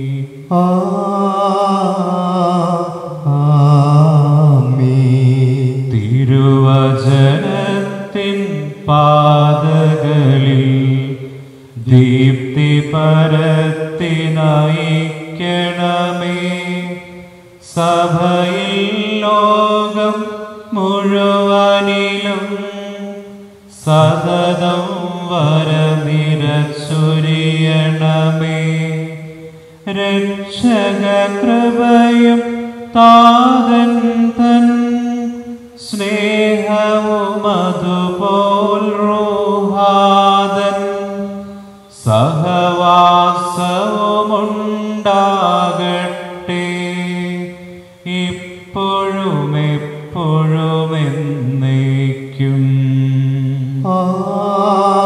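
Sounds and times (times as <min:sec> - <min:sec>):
man chanting a hymn: 0:00.0 - 0:55.0.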